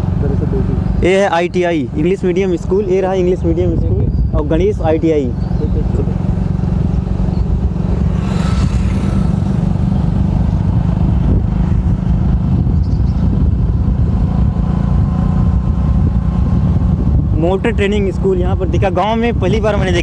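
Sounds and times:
road vehicle rumble: 0.0s - 20.0s.

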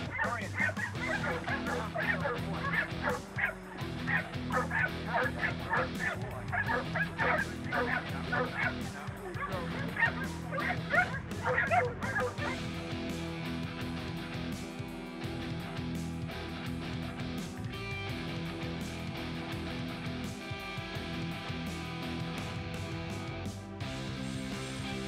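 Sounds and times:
dog barking rapidly: 0.0s - 12.6s
background music: 0.0s - 25.0s.

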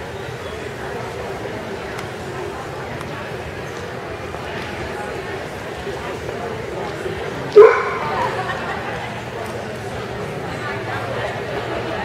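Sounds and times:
dog barking: 7.6s - 8.2s.

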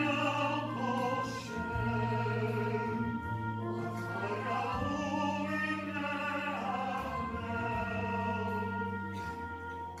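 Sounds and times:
orchestral accompaniment: 0.0s - 10.0s.

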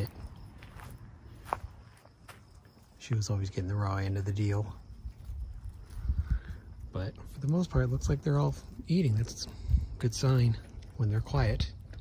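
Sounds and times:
footsteps on dirt and straw: 0.0s - 11.4s.

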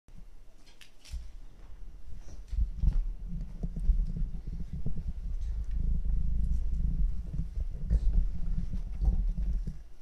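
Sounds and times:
microphone handling rumble: 1.1s - 10.0s.

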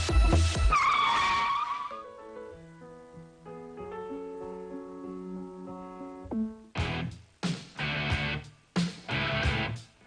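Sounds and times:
electronic dance beat: 0.0s - 0.7s
car tyre screech: 0.7s - 2.0s.

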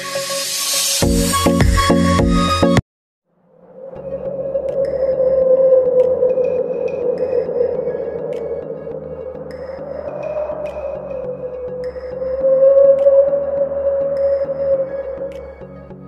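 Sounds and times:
ambient electronic music: 0.0s - 2.8s, 3.4s - 16.0s.

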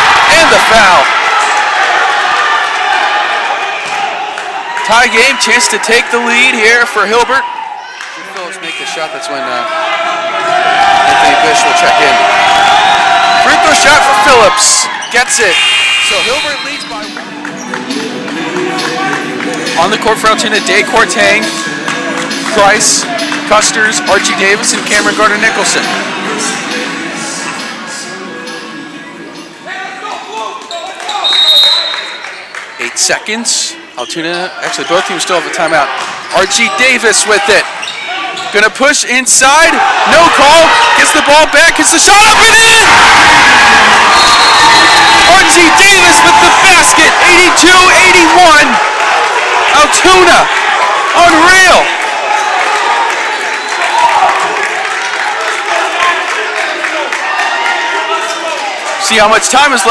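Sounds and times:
crowd chatter: 0.0s - 59.9s
clapping: 52.0s - 58.0s.

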